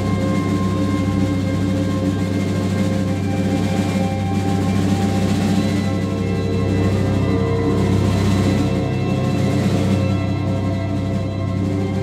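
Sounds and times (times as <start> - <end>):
live band droning passage: 0.0 - 12.0.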